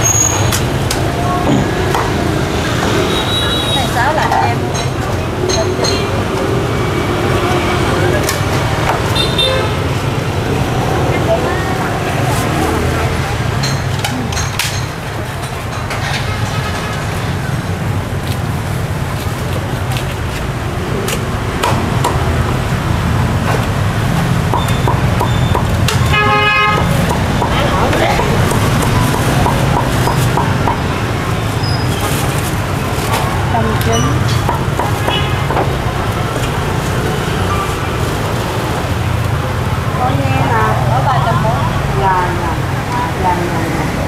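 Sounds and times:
street traffic rumble: 0:00.0 - 0:44.0
vehicle horn honking: 0:09.2 - 0:09.9, 0:26.1 - 0:27.0.

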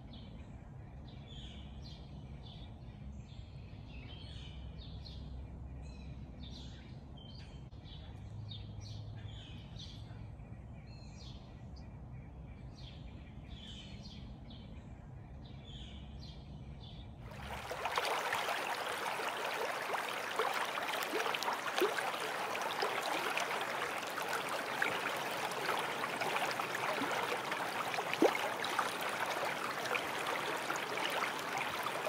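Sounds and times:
faint birdsong: 0:00.0 - 0:32.0
running water with drips and splashes: 0:17.3 - 0:32.0.

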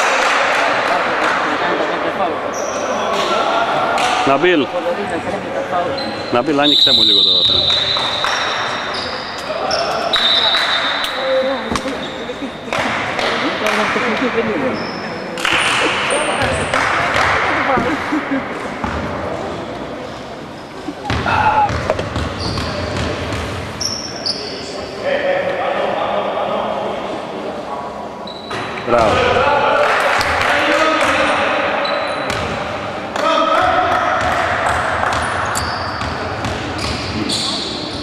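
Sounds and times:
voices in sports hall: 0:00.0 - 0:38.0
basketball bouncing on wooden court: 0:21.1 - 0:23.6, 0:33.9 - 0:37.2.

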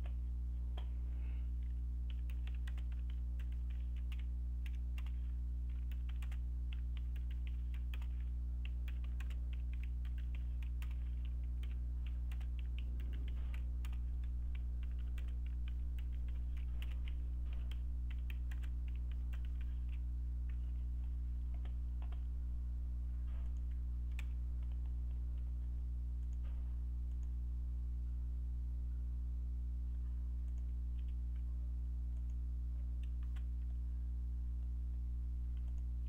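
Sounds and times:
steady low hum: 0:00.0 - 0:36.0
typing on computer keyboard: 0:01.6 - 0:20.7.

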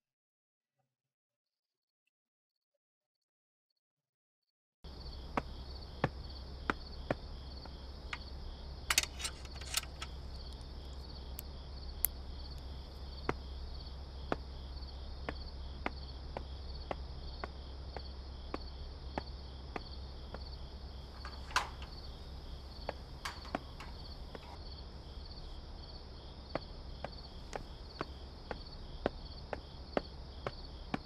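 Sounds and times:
crickets chirping: 0:04.9 - 0:31.0
light ticking steps: 0:04.9 - 0:31.0
low background hum: 0:04.9 - 0:31.0
sharp clicks: 0:08.9 - 0:12.7, 0:22.9 - 0:24.6.

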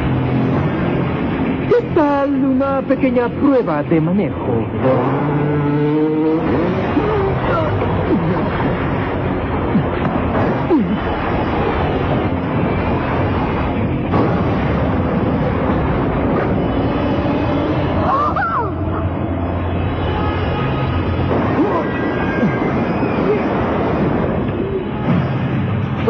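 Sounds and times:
robotic vehicle humming: 0:00.0 - 0:26.0.

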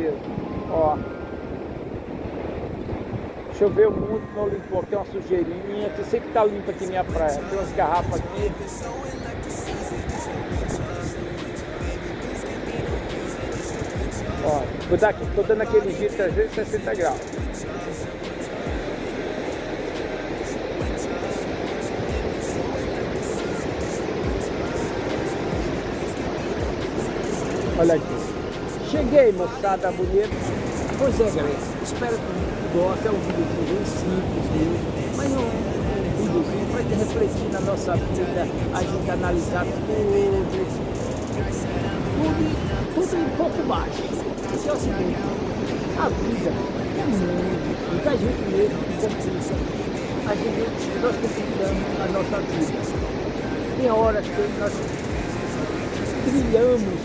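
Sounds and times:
ocean surf breaking: 0:00.0 - 0:57.0
wind buffeting microphone: 0:00.0 - 0:57.0.

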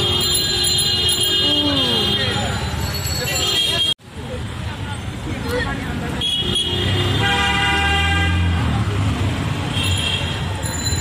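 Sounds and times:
traffic noise: 0:00.0 - 0:11.0
voices of passers-by: 0:00.0 - 0:11.0.

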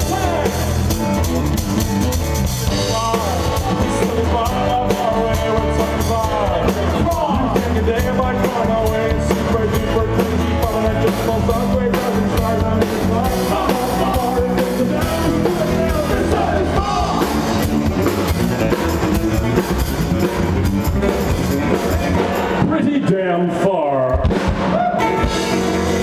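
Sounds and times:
live rock band playing: 0:00.0 - 0:26.0.

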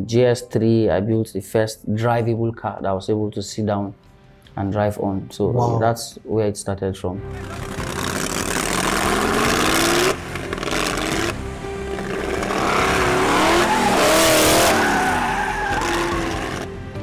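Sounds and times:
car engine revving: 0:07.6 - 0:16.8.

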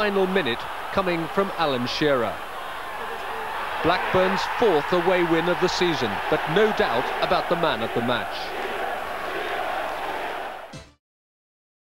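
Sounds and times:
stadium crowd voices: 0:00.0 - 0:10.8.

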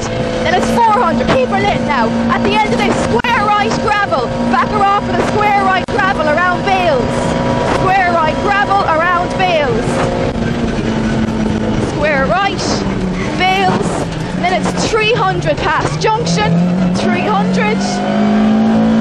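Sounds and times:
car engine at full throttle: 0:00.0 - 0:19.0.

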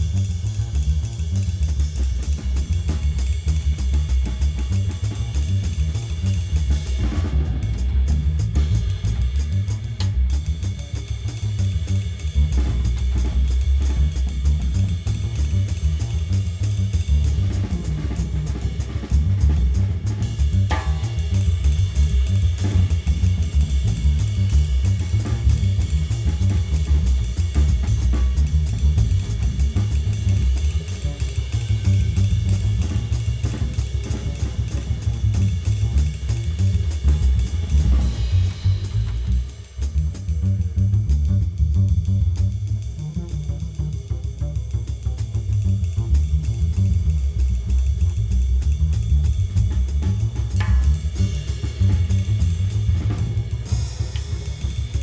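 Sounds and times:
swing jazz drum kit: 0:00.0 - 0:55.0
upright bass line: 0:00.0 - 0:55.0.

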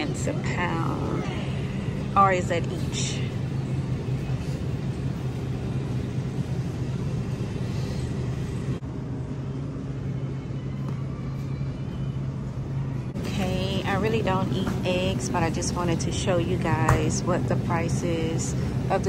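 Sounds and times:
constant hum: 0:00.0 - 0:19.0.

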